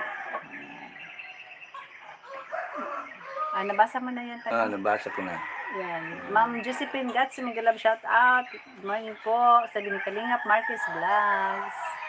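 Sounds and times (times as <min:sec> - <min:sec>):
rooster crowing: 0:00.0 - 0:01.0, 0:01.7 - 0:03.8, 0:04.9 - 0:07.0, 0:10.0 - 0:12.0
chickens calling: 0:00.0 - 0:12.0.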